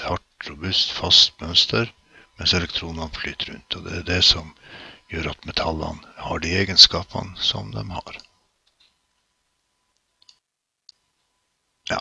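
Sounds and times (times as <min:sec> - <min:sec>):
faint steady hum: 0:00.0 - 0:12.0
small clicks: 0:09.9 - 0:11.3.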